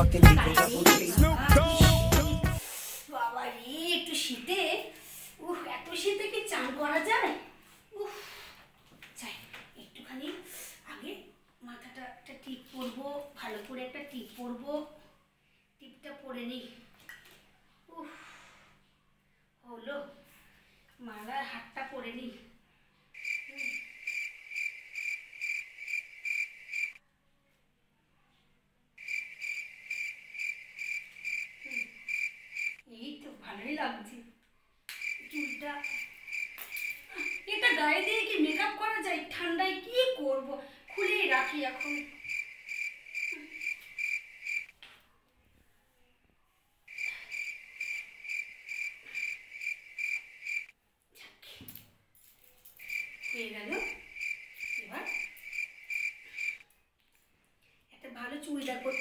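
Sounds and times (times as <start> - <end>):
cricket chirping: 23.2 - 27.0, 29.0 - 32.8, 35.0 - 38.8, 41.0 - 44.7, 46.9 - 50.7, 52.8 - 56.6.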